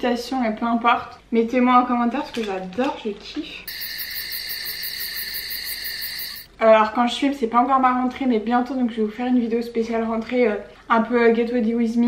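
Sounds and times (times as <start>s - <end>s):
crickets chirping: 3.7s - 6.5s.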